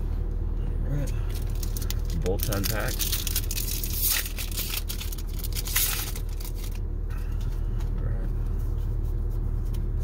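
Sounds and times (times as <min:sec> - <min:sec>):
steady low hum: 0:00.0 - 0:10.0
foil pack tearing and crinkling: 0:01.3 - 0:06.8.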